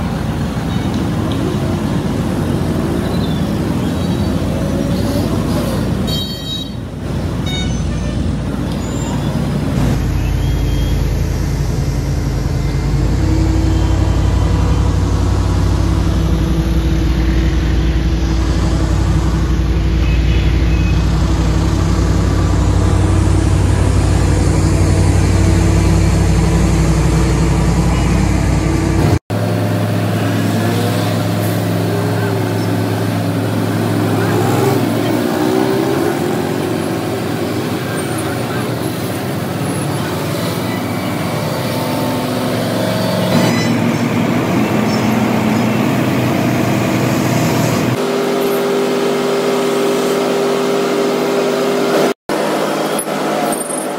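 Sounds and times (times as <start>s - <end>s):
heavy diesel engine running: 0.0s - 53.9s
street traffic: 0.0s - 53.9s
vehicles passing: 0.0s - 53.9s
different engine running: 9.8s - 53.9s.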